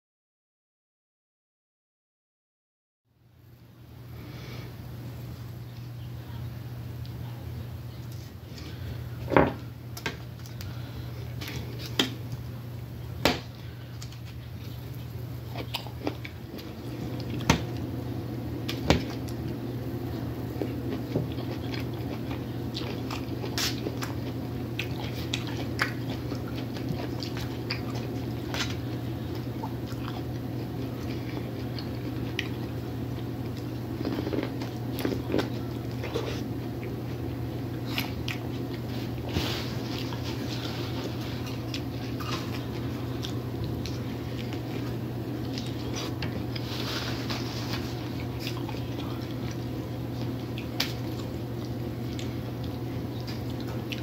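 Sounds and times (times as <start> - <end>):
steady low hum: 3.1 - 54.0
person chewing food: 13.4 - 54.0.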